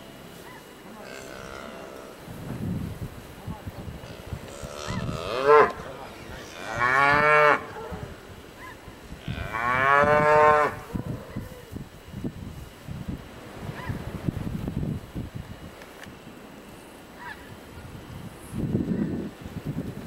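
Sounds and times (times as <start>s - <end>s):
cattle mooing: 0.9s - 2.4s, 4.0s - 8.2s, 9.2s - 11.2s.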